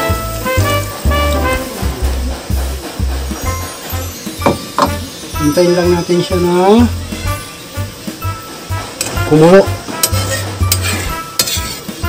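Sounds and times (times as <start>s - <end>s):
broth bubbling and sizzling: 0.0s - 12.0s
spatula scraping a wok: 7.0s - 12.0s.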